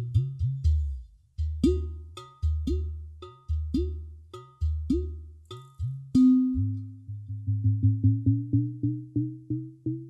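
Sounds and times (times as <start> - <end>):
clay pot drum played by hand: 0.0 - 6.9.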